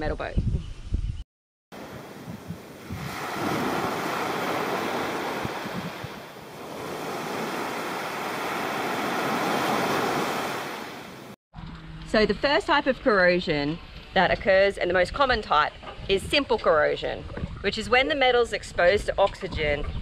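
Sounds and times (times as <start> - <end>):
small waves washing on beach: 1.8 - 11.4.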